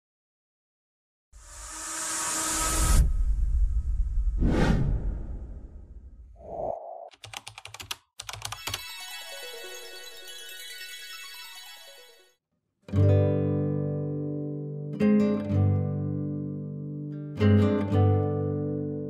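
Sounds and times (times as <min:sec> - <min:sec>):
whoosh: 0:01.8 - 0:07.1.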